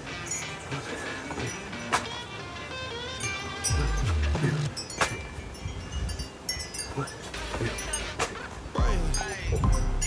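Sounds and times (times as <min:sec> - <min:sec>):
small wind chime ringing: 0:03.1 - 0:04.0, 0:04.7 - 0:08.2.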